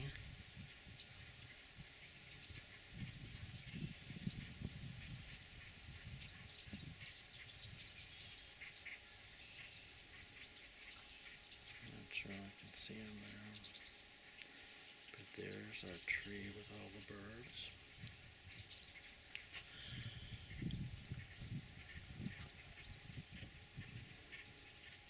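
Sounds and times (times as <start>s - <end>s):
wind rumbling on microphone: 0.0s - 10.6s, 15.3s - 25.0s
faint bird chirps: 0.0s - 25.0s.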